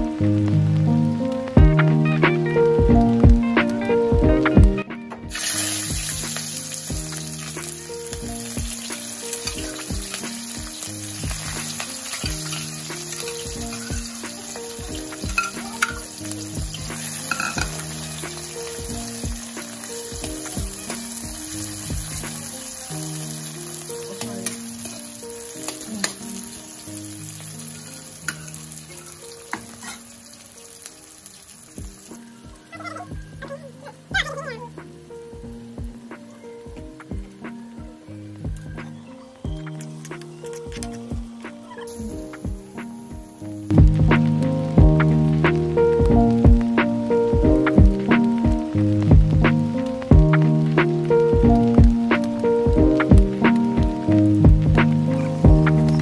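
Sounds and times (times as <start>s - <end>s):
soft background music: 0.0s - 56.0s
vegetables sizzling in hot oil: 0.0s - 56.0s
metal ladle knocking against pan: 17.3s - 17.7s.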